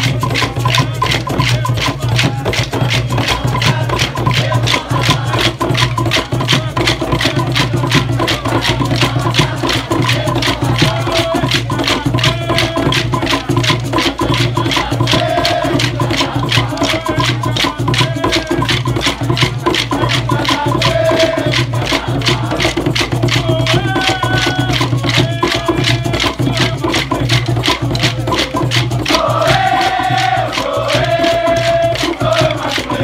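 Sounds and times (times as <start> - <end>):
hand drums low beat: 0.0 - 33.0
hand shakers: 0.0 - 33.0
wooden sticks clacking: 24.0 - 33.0.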